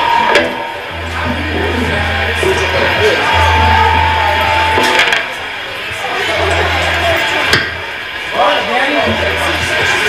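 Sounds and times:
electric guitar: 0.0s - 8.1s
amplifier hum: 0.0s - 8.2s, 9.0s - 10.0s.

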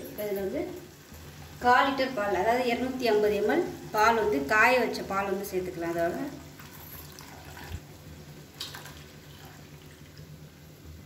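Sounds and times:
low steady hum: 0.0s - 11.0s
milk pouring in a thin stream: 6.1s - 7.8s, 8.5s - 10.3s.

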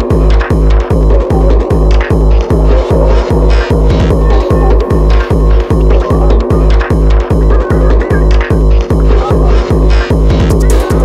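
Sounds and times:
fast techno dance music: 0.0s - 11.0s
heavy kick drum: 0.0s - 11.0s
synth layer: 0.0s - 11.0s.

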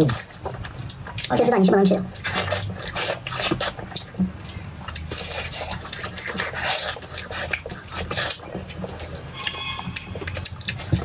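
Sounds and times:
mouth chewing food: 0.0s - 11.0s.

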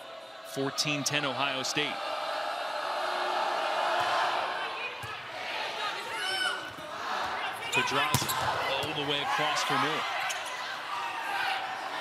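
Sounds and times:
arena crowd din: 0.0s - 12.0s.

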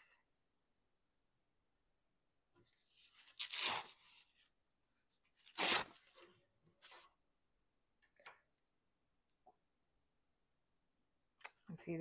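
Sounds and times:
magazine page ripping: 3.1s - 4.3s, 5.4s - 6.1s.

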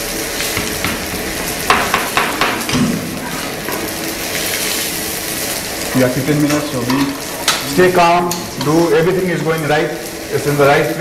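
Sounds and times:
food sizzling in pans: 0.0s - 11.0s
metal utensils clattering on pans: 0.4s - 4.8s, 5.8s - 11.0s.

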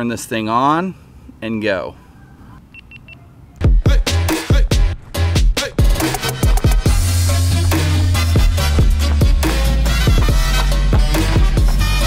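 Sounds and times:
electronic music with bass kick: 3.6s - 12.0s.

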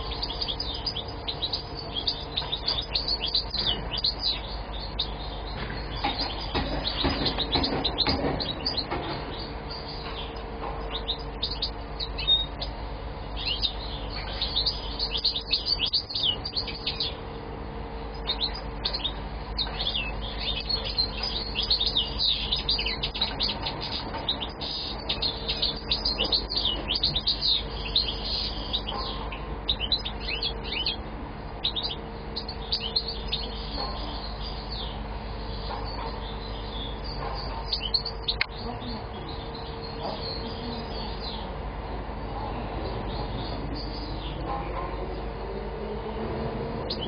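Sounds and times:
finch singing twittering song: 0.0s - 45.3s, 46.8s - 47.0s
low hum: 0.0s - 47.0s.

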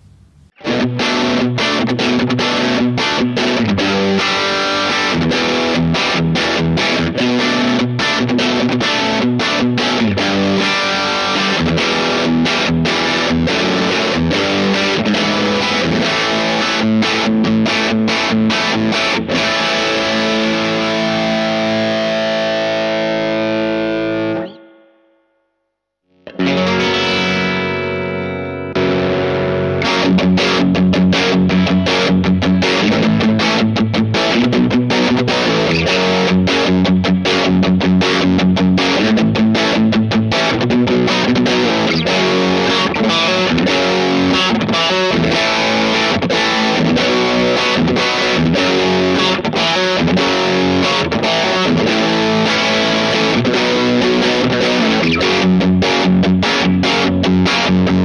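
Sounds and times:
overdriven electric guitar: 0.0s - 25.4s, 26.1s - 58.0s.

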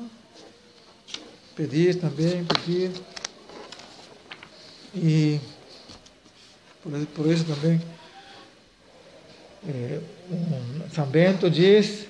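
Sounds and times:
man speaking: 1.6s - 3.1s, 4.9s - 5.7s, 6.8s - 8.1s, 9.6s - 12.0s.

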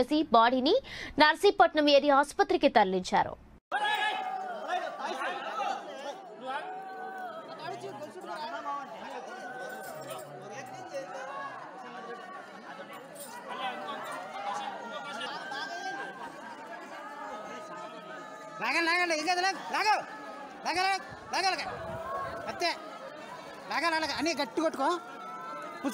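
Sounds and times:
overlapping chatter of voices: 3.7s - 25.9s.

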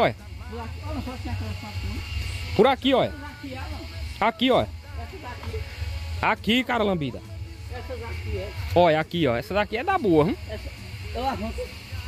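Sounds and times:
man's voice: 0.0s - 10.6s
faint murmured speech: 0.0s - 12.0s.

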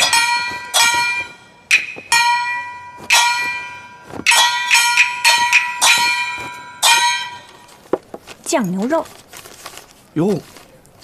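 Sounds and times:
gong strikes ringing: 0.0s - 7.7s.

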